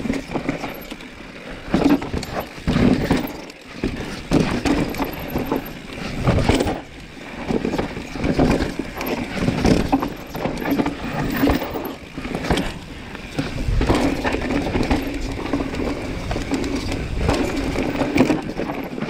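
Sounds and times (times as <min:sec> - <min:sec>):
bike rattling: 0:00.0 - 0:19.0
bike tyres clattering over rock: 0:00.0 - 0:19.0.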